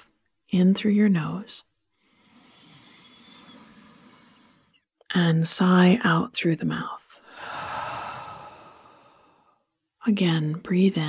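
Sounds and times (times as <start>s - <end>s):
woman breathing in through nose: 1.9s - 4.8s, 7.2s - 9.6s.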